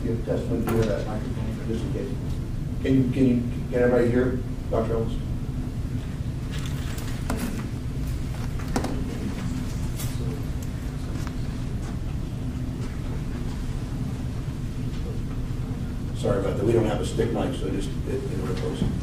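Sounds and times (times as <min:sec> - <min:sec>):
low room rumble: 0:00.0 - 0:19.0
microphone knocks and rustles: 0:07.2 - 0:09.7.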